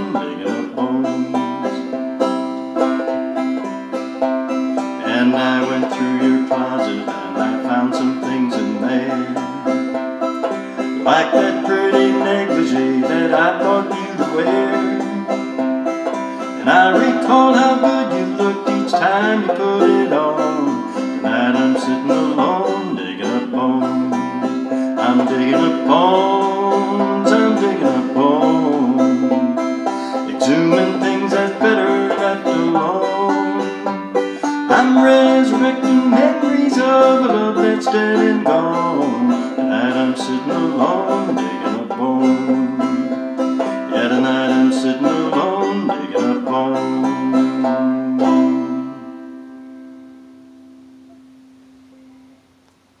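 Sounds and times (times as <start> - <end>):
banjo picking: 0.0 - 52.5
faint hiss: 0.0 - 53.0.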